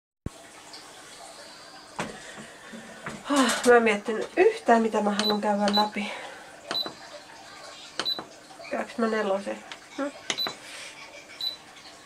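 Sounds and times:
exercise machine console beep: 5.2s - 6.0s, 6.7s - 7.1s, 8.0s - 8.3s, 10.3s - 10.6s, 11.4s - 11.6s.

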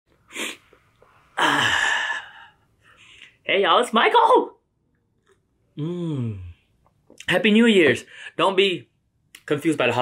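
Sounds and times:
person sneezing: 0.3s - 0.7s
breath in: 0.3s - 3.4s.

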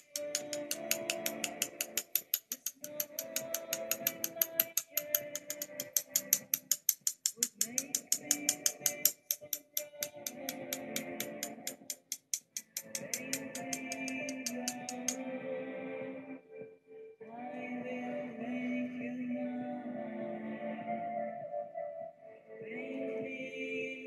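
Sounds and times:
fast ticking beat: 0.0s - 15.2s.

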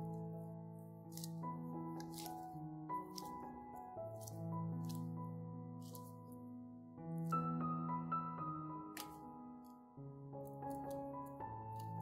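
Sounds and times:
dough squishing: 0.0s - 7.8s, 8.7s - 12.0s
background music sustained notes: 0.0s - 12.0s.

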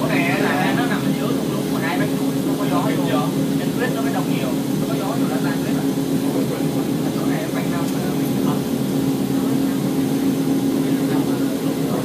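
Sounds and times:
electric train running drone: 0.0s - 12.0s
faint voices talking: 0.0s - 12.0s.

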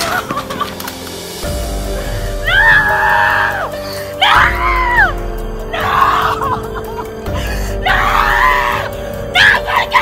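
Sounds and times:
background music with sustained notes: 0.0s - 10.0s
woman wailing in grief: 5.7s - 7.1s, 7.7s - 10.0s.

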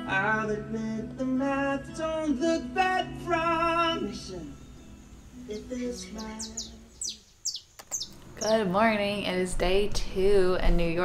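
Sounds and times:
birds chirping: 4.3s - 9.2s.

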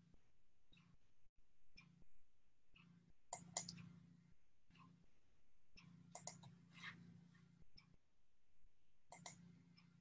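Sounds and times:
faint computer clicking: 2.8s - 4.0s, 5.8s - 6.6s, 9.1s - 10.0s.

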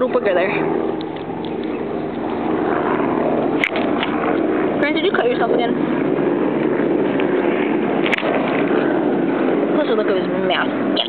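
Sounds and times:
engine-like drone: 0.0s - 11.0s.

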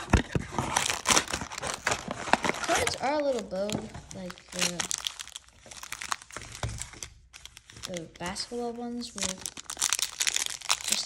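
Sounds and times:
foil packs crinkling: 0.0s - 11.0s.

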